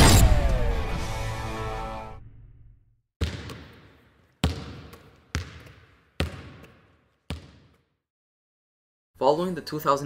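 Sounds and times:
basketball bouncing with echo: 3.2 - 8.0.

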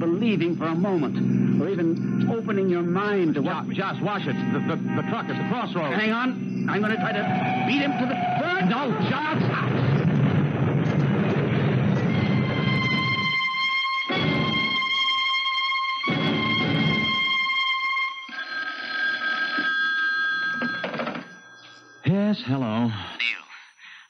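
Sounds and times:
music sting chord: 12.0 - 15.0, 16.1 - 17.5
telephone bell ringing: 18.2 - 22.2.

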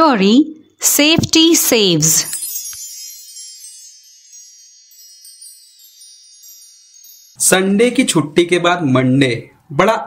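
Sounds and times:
shimmering metallic chime: 2.0 - 8.4.

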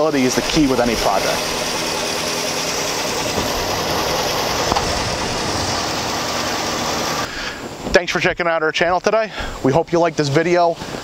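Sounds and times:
pickup truck engine idling: 0.0 - 7.8.

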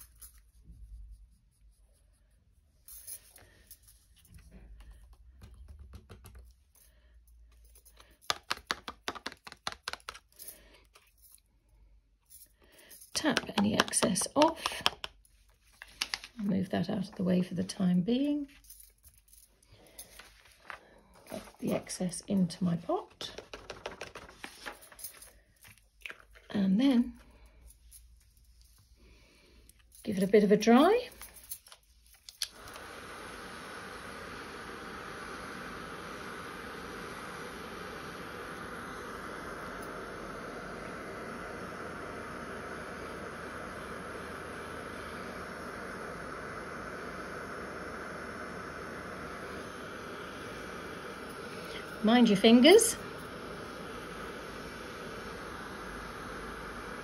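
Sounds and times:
card tapping: 8.2 - 10.3, 13.3 - 15.2, 23.3 - 24.5.

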